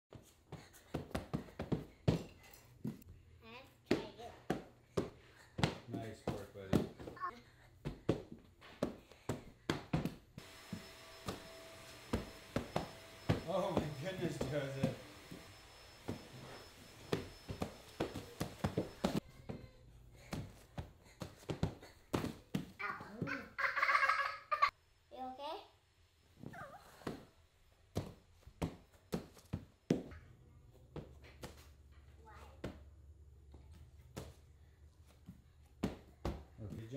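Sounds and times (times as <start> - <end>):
bare feet thudding on floor: 3.9 - 23.4
child's voice: 7.1 - 7.5, 22.8 - 23.6, 25.1 - 25.8, 32.2 - 32.7.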